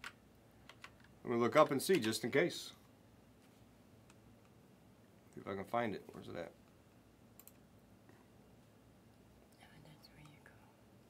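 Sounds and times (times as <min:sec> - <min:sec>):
faint clicks: 0:07.4 - 0:07.7.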